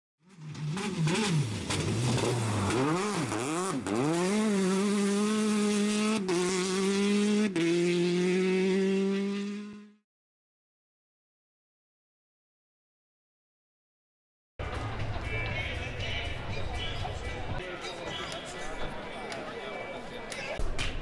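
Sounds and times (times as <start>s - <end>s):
race car engine revving: 0.3s - 10.0s.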